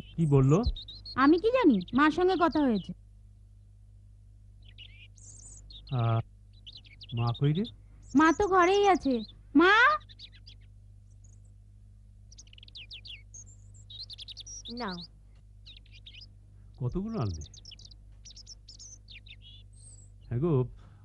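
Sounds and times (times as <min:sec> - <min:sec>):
small birds chirping: 0:00.0 - 0:03.8, 0:04.4 - 0:21.0
steady low hum: 0:00.0 - 0:21.0.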